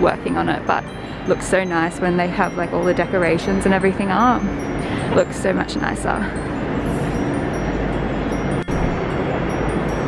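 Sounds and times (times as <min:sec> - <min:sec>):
tinkling chimes: 0:00.0 - 0:10.0.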